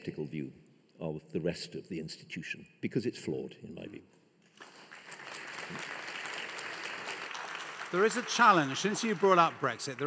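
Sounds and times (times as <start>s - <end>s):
audience applauding: 4.6s - 10.0s.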